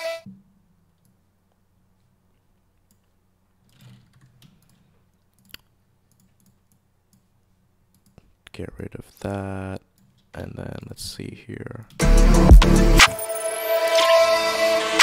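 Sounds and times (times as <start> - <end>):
computer mouse clicks: 2.8 - 7.3, 7.9 - 8.3.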